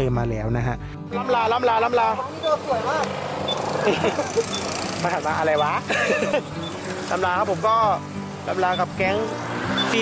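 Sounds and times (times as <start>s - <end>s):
voices calling out: 1.1s - 10.0s
motorcycle engines idling: 1.7s - 10.0s.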